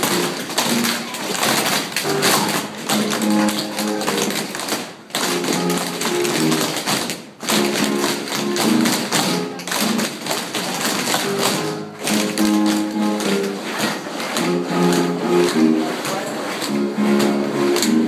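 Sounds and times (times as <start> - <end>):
recorded music: 0.0 - 18.0
tap shoes on wooden floor: 0.0 - 18.0.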